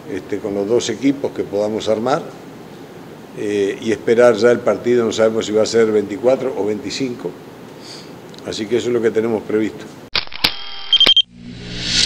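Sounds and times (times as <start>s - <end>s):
sharp electronic clicks: 10.1s - 11.3s
rising whoosh: 11.3s - 12.0s.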